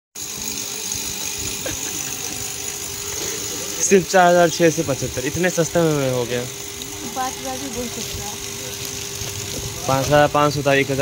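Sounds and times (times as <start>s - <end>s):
street traffic: 0.2s - 11.0s.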